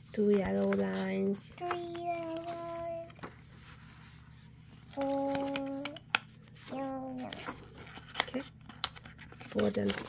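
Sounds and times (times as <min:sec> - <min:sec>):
card folding with clicks: 0:04.9 - 0:10.0.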